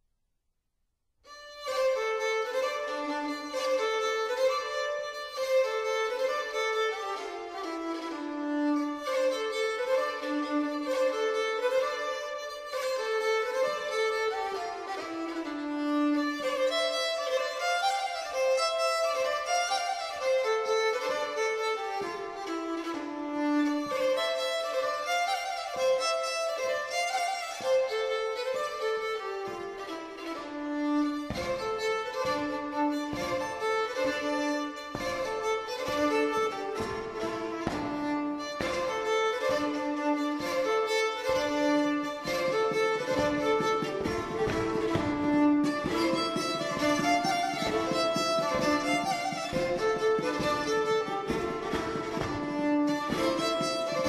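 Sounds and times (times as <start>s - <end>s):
fiddle playing a jig: 1.3s - 54.0s.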